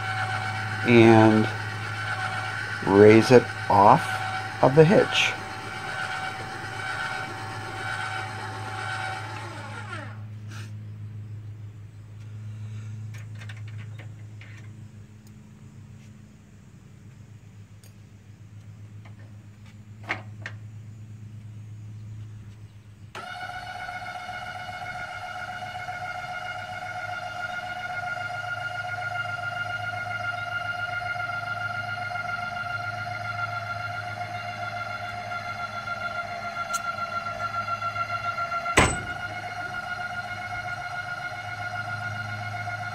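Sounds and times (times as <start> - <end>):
electric jack motor whining: 0.0 - 10.3, 23.1 - 42.9
steady low hum: 0.0 - 23.2, 24.3 - 42.9.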